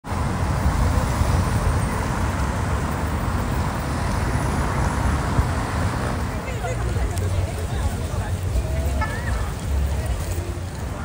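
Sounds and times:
cars driving past: 0:00.0 - 0:11.0.

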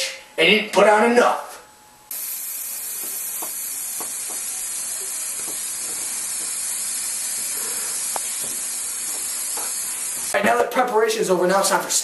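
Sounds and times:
aerosol spray hissing: 0:02.1 - 0:10.4.

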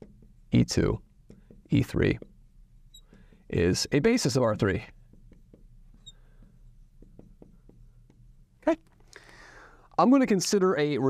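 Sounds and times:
marker tapping and scratching on glass: 0:00.0 - 0:09.0
marker tip squeak: 0:02.8 - 0:03.3, 0:05.2 - 0:06.6.

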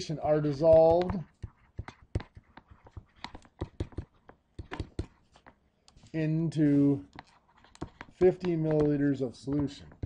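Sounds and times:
stylus tapping on screen: 0:00.4 - 0:06.1, 0:07.1 - 0:10.0.

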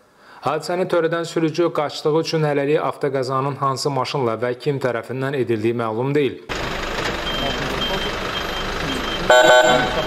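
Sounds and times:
vehicle engine: 0:06.5 - 0:10.0
reversing alarm beeping: 0:07.2 - 0:10.0.

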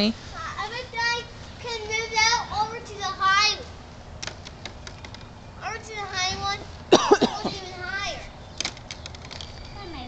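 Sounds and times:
child talking: 0:00.3 - 0:03.7, 0:05.6 - 0:08.3, 0:09.8 - 0:10.0.

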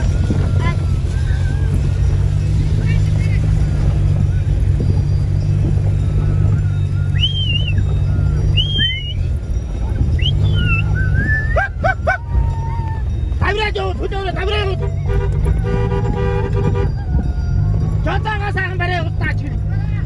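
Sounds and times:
vehicle rumble from inside cabin: 0:00.0 - 0:20.0.

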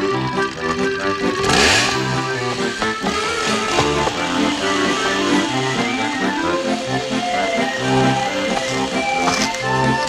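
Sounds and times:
organ-like background music: 0:00.0 - 0:10.0
chainsaw revving: 0:00.2 - 0:10.0.

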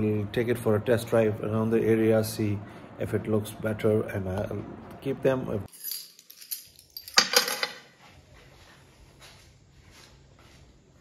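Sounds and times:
sharp metallic clinks: 0:05.7 - 0:07.8.

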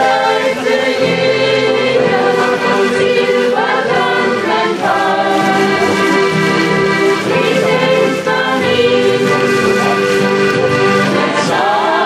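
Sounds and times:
button accordions playing folk tune: 0:00.0 - 0:12.0.

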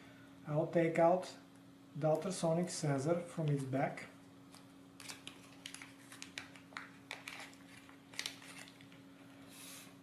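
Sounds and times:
plastic bag crinkling: 0:05.0 - 0:09.0.

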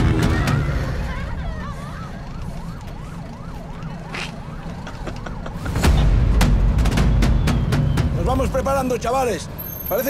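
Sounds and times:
police siren yelping: 0:00.5 - 0:05.9.

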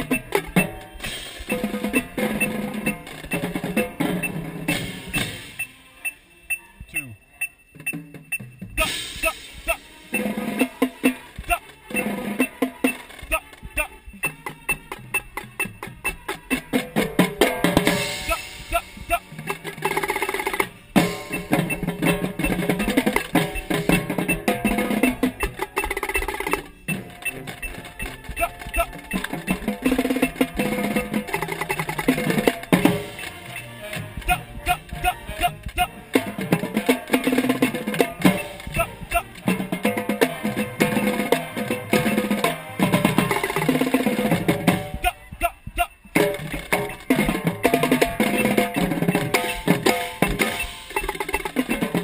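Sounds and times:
marching band playing: 0:00.0 - 0:06.2, 0:07.8 - 0:52.0
tenor drums fast runs: 0:08.8 - 0:52.0.

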